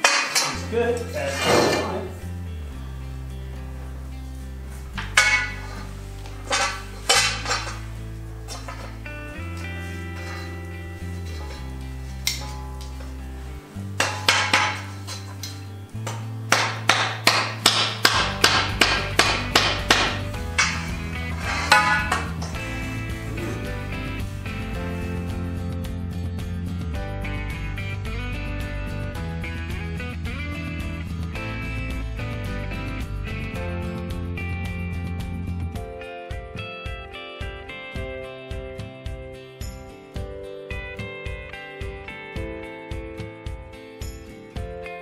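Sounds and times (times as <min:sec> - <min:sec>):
background music with bass line: 0:00.0 - 0:45.0
rubber mallet tapping metal: 0:14.0 - 0:20.9.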